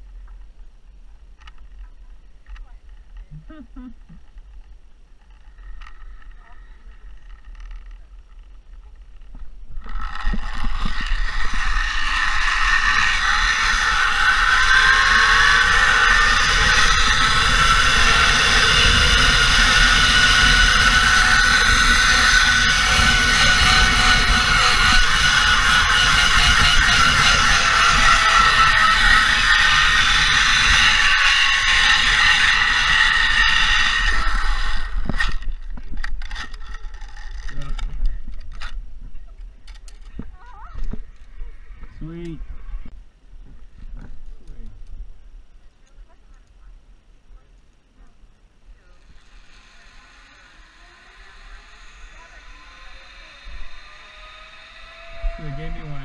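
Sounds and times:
zipline pulleys whining on cable: 5.2s - 8.6s, 9.2s - 38.8s, 48.8s - 56.0s.

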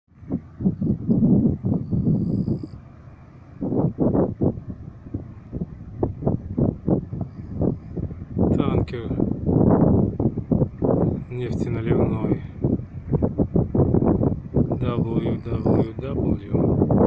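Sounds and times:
wind buffeting microphone: 0.1s - 17.0s.

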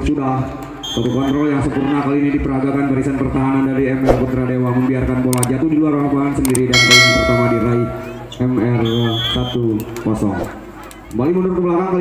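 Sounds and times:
high steady tone: 6.8s - 8.3s.

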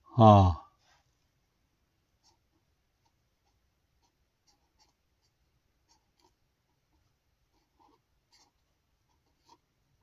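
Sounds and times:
pen scratching on paper: 2.2s - 10.0s.

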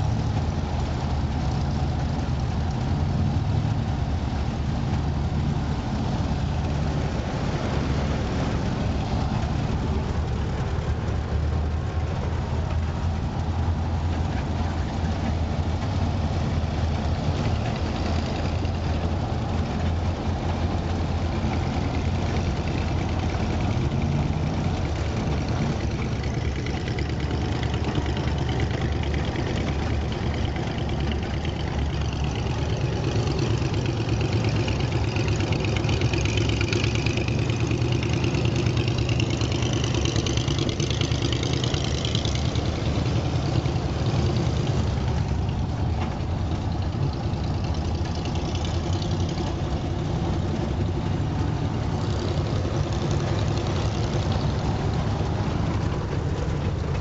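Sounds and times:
car engine running: 0.0s - 57.0s.

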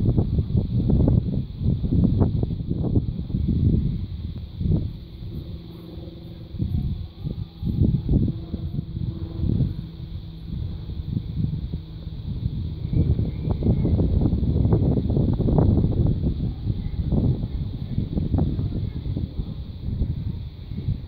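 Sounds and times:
faint steady tones: 0.0s - 21.0s
wind buffeting microphone: 0.0s - 21.0s.

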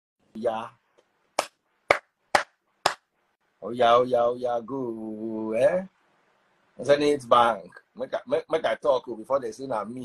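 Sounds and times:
sharp hand claps: 1.4s - 3.1s.

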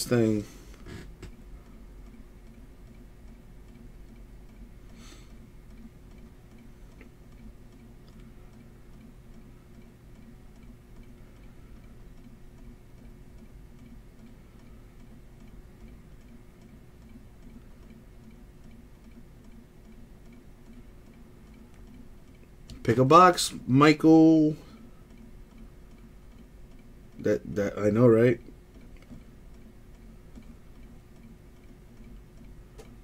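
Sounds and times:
faint regular ticking: 0.0s - 33.0s
steady low hum: 0.0s - 33.0s.

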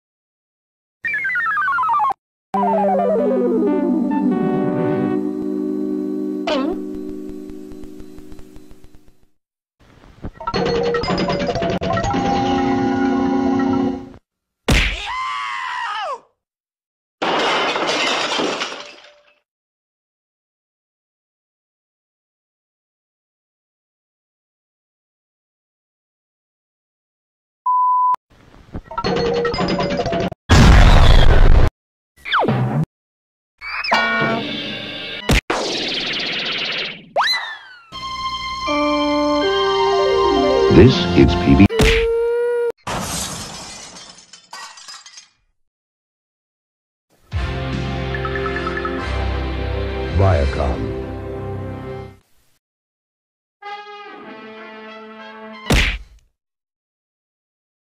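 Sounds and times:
glass shattering: 17.2s - 19.4s, 42.9s - 45.4s
glass smashing: 17.2s - 19.4s, 42.9s - 45.4s.

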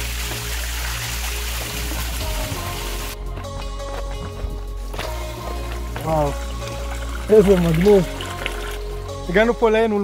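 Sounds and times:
waterfall pouring into pool: 0.0s - 3.2s, 6.2s - 8.8s
background music with steady beat: 0.0s - 10.0s.

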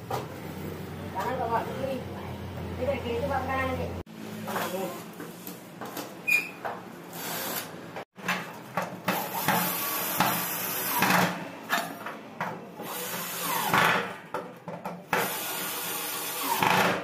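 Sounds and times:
cordless drill motor: 15.2s - 17.0s.

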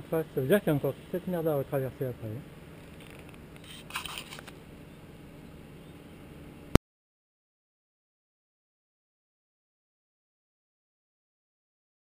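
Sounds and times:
faint outdoor hiss: 0.0s - 6.8s
scratchy rustle: 2.8s - 4.5s.

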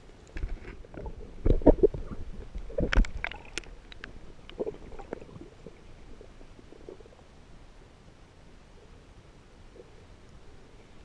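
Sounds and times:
faint crackles and pops: 0.0s - 11.0s
muffled underwater rumble: 0.0s - 11.0s.

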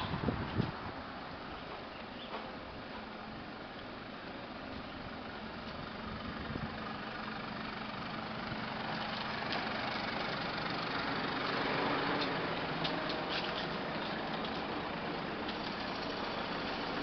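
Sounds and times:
van engine idling: 0.0s - 17.0s.

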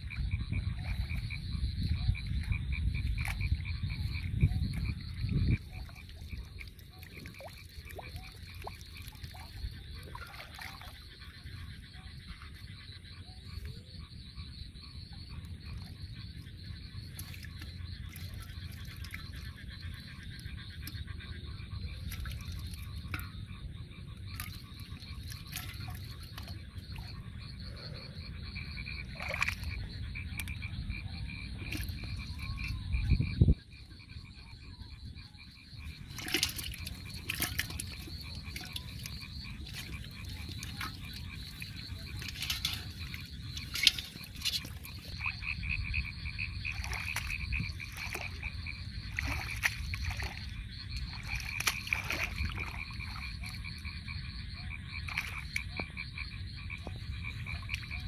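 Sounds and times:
frogs croaking: 0.0s - 58.0s
splashes in water: 0.8s - 11.6s, 15.7s - 21.0s, 21.8s - 23.4s, 24.2s - 28.0s, 28.9s - 30.6s, 31.4s - 33.3s, 35.7s - 58.0s.

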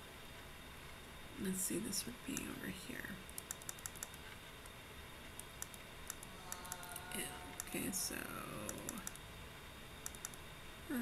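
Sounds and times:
computer clicks: 3.2s - 4.3s, 5.4s - 8.0s, 8.6s - 9.2s, 10.0s - 10.4s.

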